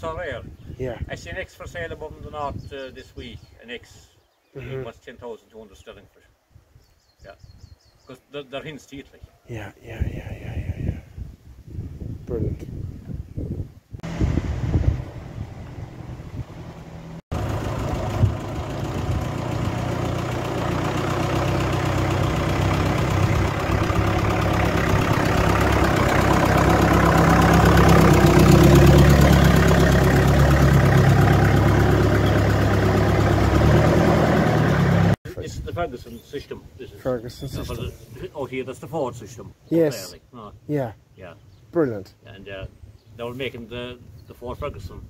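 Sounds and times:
tractor engine running: 0:14.0 - 0:35.2.

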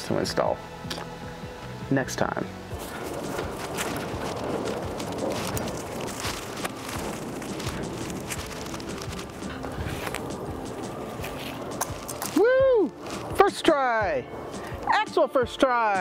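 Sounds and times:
outdoor noise: 0:00.0 - 0:16.0
light rustling: 0:02.8 - 0:13.5.

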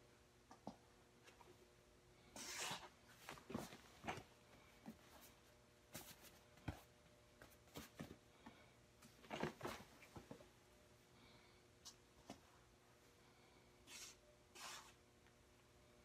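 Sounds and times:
clothing rustling: 0:03.0 - 0:08.2, 0:09.0 - 0:10.6.

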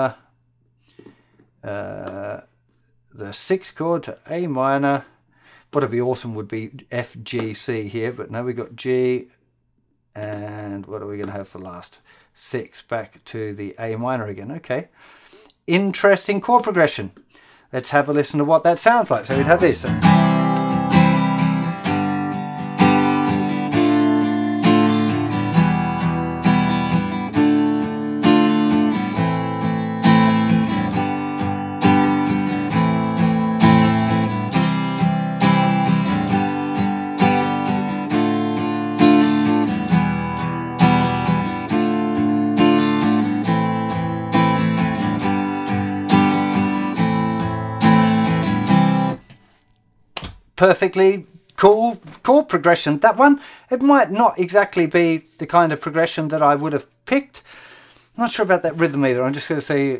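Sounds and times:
acoustic guitar strumming: 0:19.2 - 0:49.7.

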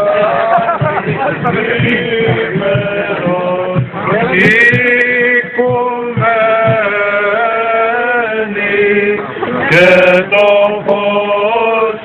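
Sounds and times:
men chanting a hymn: 0:00.0 - 0:12.0.

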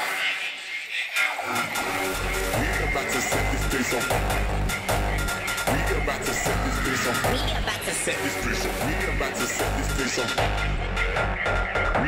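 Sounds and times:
hardstyle dance music: 0:00.0 - 0:12.0.

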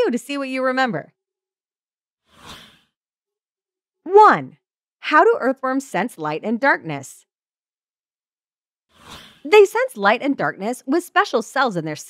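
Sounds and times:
whoosh sound effect: 0:02.3 - 0:02.9.

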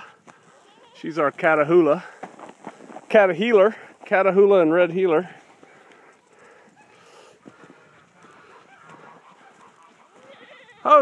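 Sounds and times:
farm animal noise: 0:00.0 - 0:11.0
goats bleating: 0:00.5 - 0:01.7, 0:05.6 - 0:11.0
loud animal call: 0:08.2 - 0:11.0.

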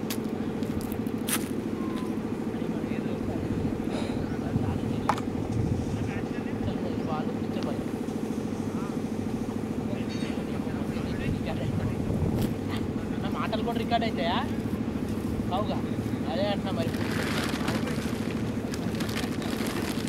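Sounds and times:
low engine drone: 0:00.0 - 0:20.0.

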